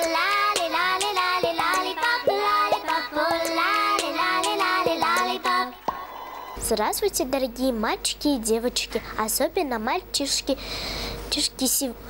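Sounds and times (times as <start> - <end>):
child singing: 0.0 - 5.8
musical backing: 0.0 - 6.6.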